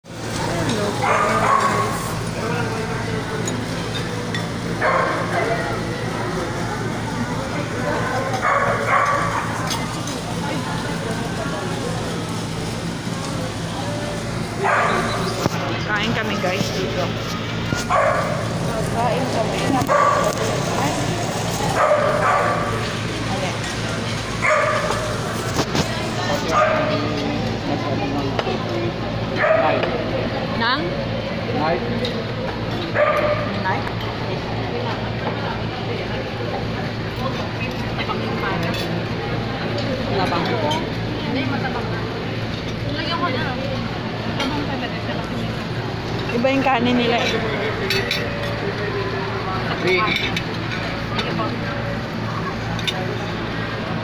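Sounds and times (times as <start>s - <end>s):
background chatter: 0.0s - 54.0s
faint voices talking: 0.0s - 54.0s.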